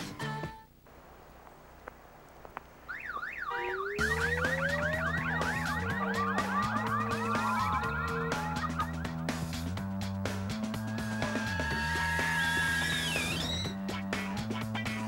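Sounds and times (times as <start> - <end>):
car alarm warbling siren: 2.9 - 9.7, 10.8 - 13.7
music with steady bass line: 4.0 - 15.0.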